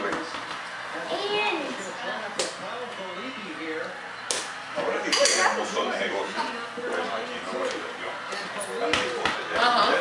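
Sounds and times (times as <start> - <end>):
indistinct conversation: 0.0 - 10.0.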